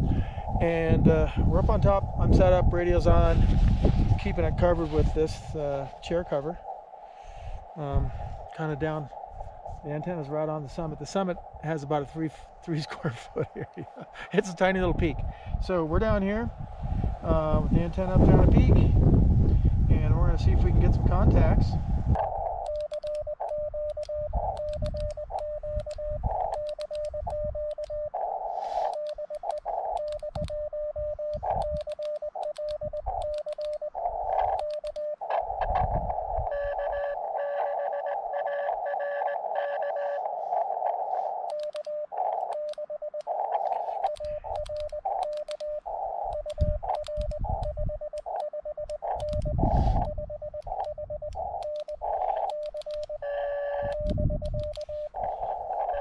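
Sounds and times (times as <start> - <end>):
receiver hiss: 22.1 - 56.0
morse code tone: 22.2 - 56.0.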